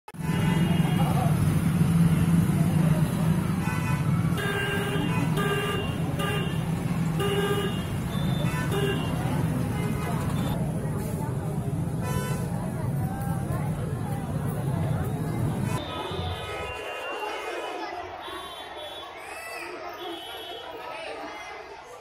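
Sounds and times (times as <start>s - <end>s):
crowd noise: 0.1s - 22.0s
street traffic: 0.1s - 22.0s.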